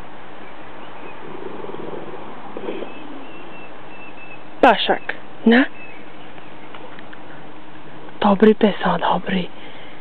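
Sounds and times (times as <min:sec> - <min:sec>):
background hiss: 0:00.0 - 0:10.0
dog breathing low rumble: 0:01.1 - 0:03.6.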